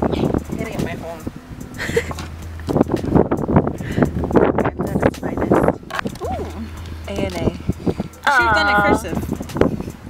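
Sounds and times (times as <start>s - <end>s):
people talking: 0.0s - 1.3s, 4.5s - 7.6s, 8.2s - 9.3s
low steady hum: 0.0s - 10.0s.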